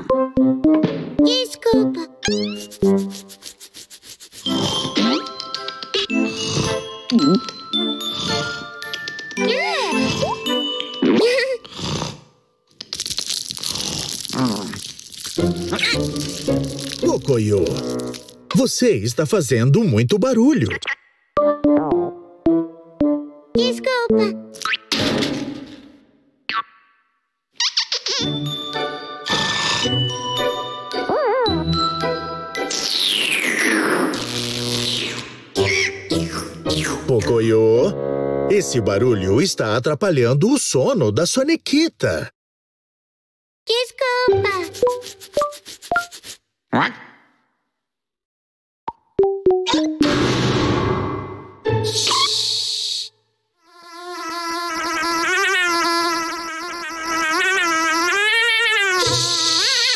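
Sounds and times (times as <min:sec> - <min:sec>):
cartoon background music: 0:00.0 - 0:03.6, 0:04.4 - 0:11.6, 0:15.4 - 0:24.9, 0:27.7 - 0:34.2, 0:34.8 - 0:39.9, 0:43.8 - 0:46.1, 0:49.2 - 0:52.8.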